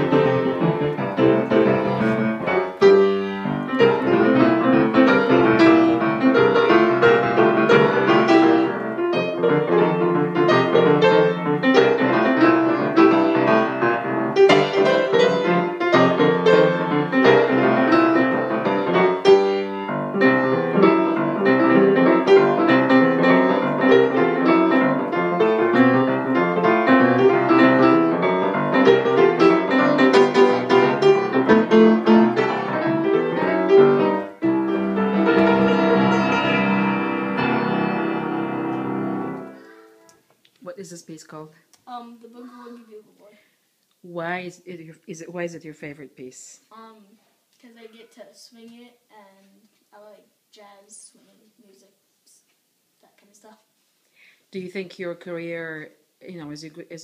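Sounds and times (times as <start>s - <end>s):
jazz piano solo: 0.0s - 40.1s.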